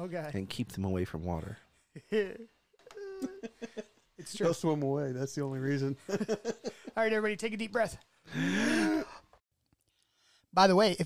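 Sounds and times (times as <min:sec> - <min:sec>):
man's exaggerated deep breath: 0:08.3 - 0:09.3.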